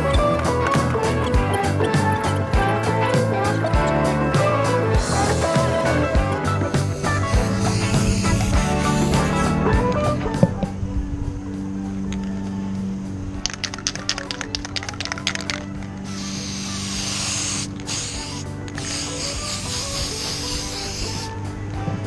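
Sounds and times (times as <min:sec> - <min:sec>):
background music: 0:00.0 - 0:22.0
aerosol spray hissing: 0:06.8 - 0:09.5, 0:16.0 - 0:21.4
spray can ball rattling: 0:13.4 - 0:21.4.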